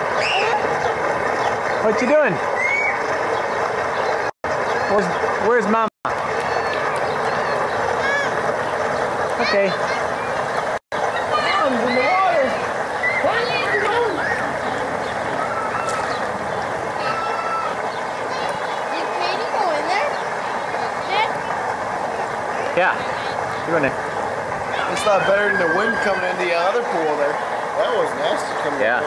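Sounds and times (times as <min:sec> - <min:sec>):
hot tub water bubbling: 0:00.0 - 0:29.0
outdoor rushing noise: 0:00.0 - 0:29.0.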